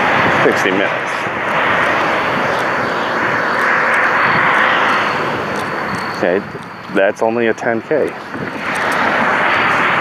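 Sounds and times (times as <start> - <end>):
loud rushing noise: 0.0 - 7.1, 8.1 - 10.0.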